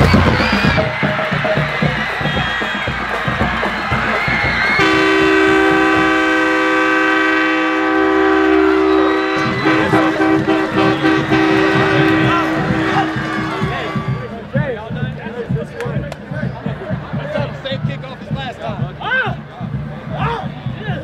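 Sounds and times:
crowd noise: 0.0s - 21.0s
air horn blast: 4.8s - 14.4s.

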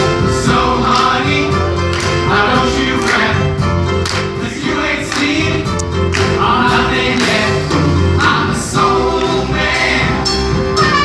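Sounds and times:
group of singers: 0.0s - 11.0s
steady bass line: 0.0s - 11.0s.

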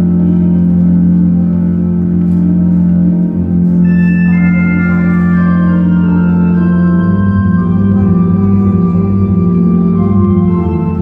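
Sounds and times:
organ music: 0.0s - 11.0s.

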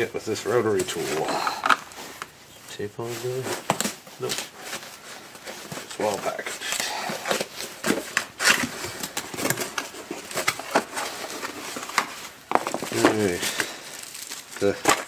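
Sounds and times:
plastic wrap crinkling: 0.0s - 15.0s.

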